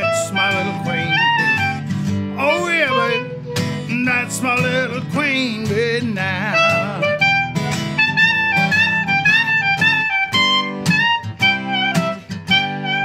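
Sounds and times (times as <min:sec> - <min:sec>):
clarinet melody: 0:00.0 - 0:13.0
strummed acoustic guitar: 0:00.0 - 0:13.0.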